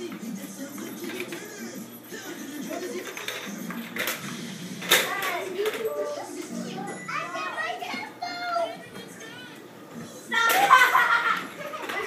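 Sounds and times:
young children calling and chattering: 0:04.8 - 0:12.0.

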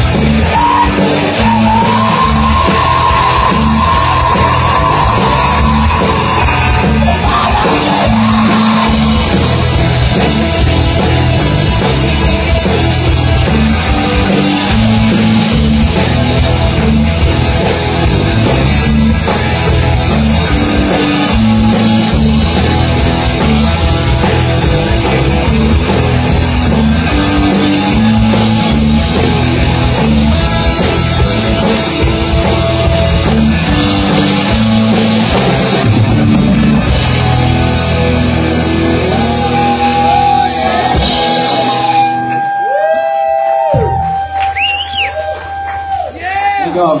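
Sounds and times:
electric guitar tone: 0:00.0 - 0:45.2
rock band playing: 0:00.0 - 0:47.0
audience cheering and whooping: 0:00.3 - 0:10.4, 0:38.8 - 0:47.0.

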